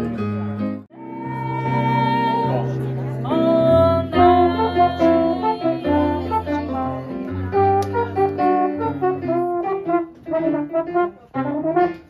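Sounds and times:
electric piano accompaniment: 0.0 - 12.0
trombone melody: 1.2 - 12.0.

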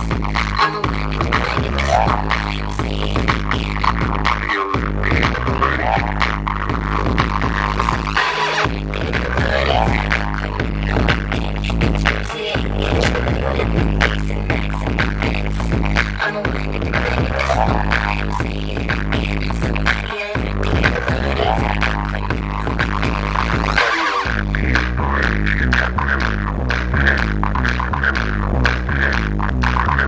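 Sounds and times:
electronic dance music: 0.0 - 30.0.

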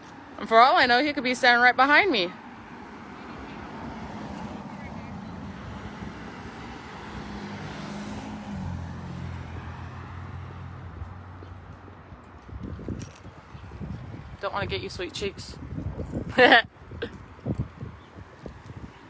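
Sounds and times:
vehicle engine passing: 2.4 - 14.4.

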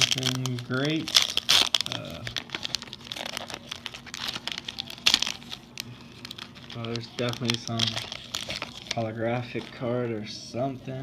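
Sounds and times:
foil wrapper crinkling: 0.0 - 9.9.

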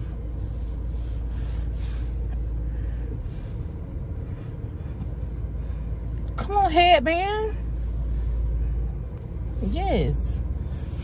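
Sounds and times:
car cabin low rumble: 0.0 - 11.0.

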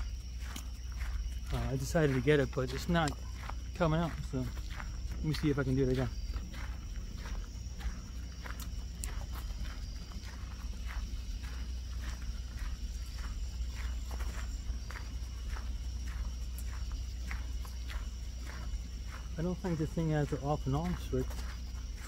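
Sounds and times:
crickets chirring: 0.0 - 22.0
footsteps on a trail: 0.0 - 22.0.

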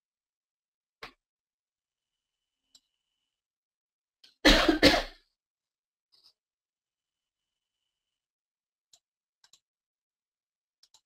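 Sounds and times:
person coughing: 4.4 - 5.3.

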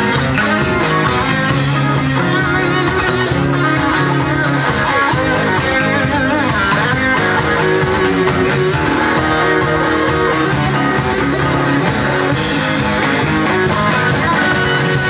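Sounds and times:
bass guitar: 0.0 - 15.0
drum kit with cymbal beat: 0.0 - 15.0
guitars: 0.0 - 15.0.

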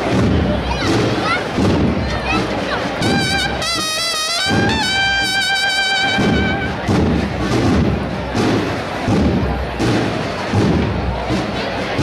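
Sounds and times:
dull low thuds: 0.0 - 3.6, 6.0 - 12.0.

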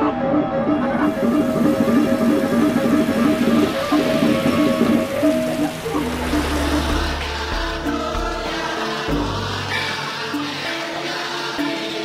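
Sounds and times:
gamelan music: 1.1 - 12.0.

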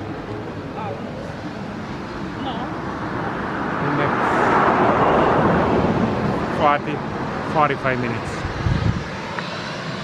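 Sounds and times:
turboprop airliner taking off: 0.0 - 10.0.

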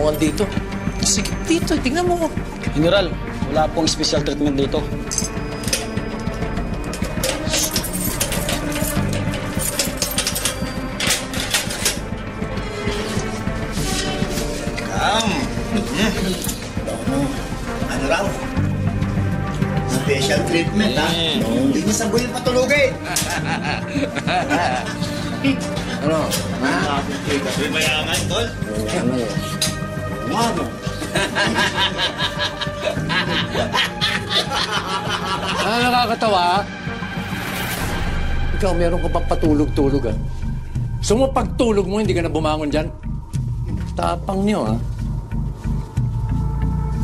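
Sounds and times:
dramatic background music: 0.0 - 47.0
chain and padlock rattling: 5.0 - 6.0, 6.8 - 12.1
men laughing mockingly: 22.9 - 25.7, 30.8 - 36.0.

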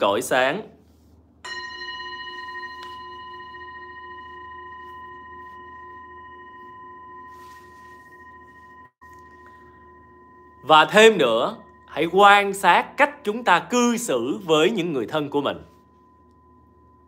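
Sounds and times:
singing bowl ringing: 1.4 - 17.0.

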